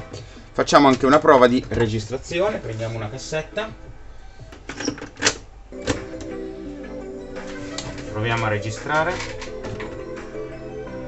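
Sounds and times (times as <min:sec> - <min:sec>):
cassette door clicking shut: 0:04.7 - 0:06.4
music through speakers: 0:05.7 - 0:11.0.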